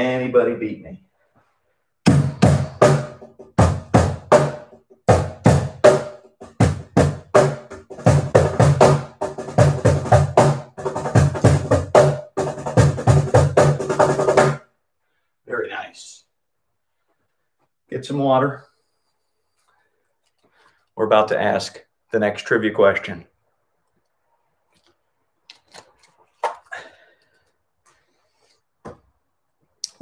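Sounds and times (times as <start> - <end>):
box drum played by hand: 2.1 - 14.6.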